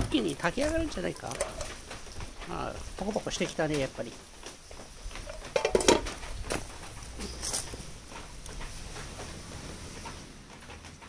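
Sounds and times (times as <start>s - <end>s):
wood fire crackling: 0.0s - 11.0s
clatter: 5.2s - 11.0s.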